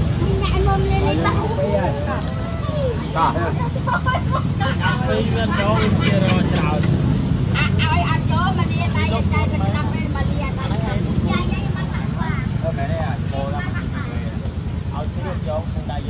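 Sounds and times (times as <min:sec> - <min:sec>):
people talking: 0:00.0 - 0:16.0.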